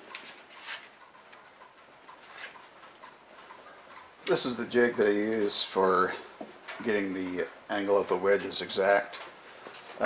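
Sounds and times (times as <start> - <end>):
light ticks: 1.0 - 5.1.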